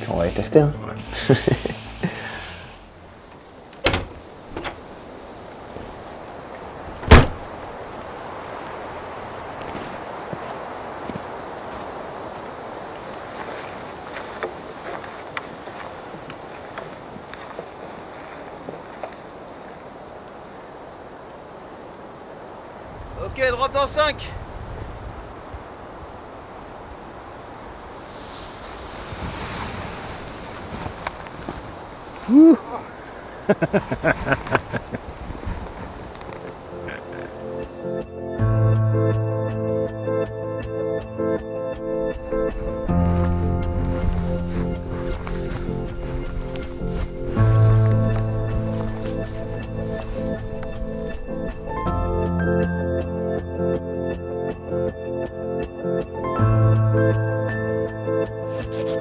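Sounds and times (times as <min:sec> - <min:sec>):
soft hiss: 0:00.0 - 0:36.7
wind noise: 0:01.0 - 0:37.8, 0:41.8 - 0:52.7.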